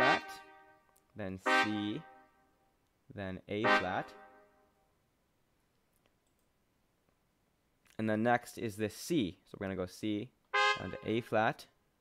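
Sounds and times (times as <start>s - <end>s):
synthesized trumpet note: 0.0s - 2.4s, 3.5s - 4.7s, 10.5s - 11.4s.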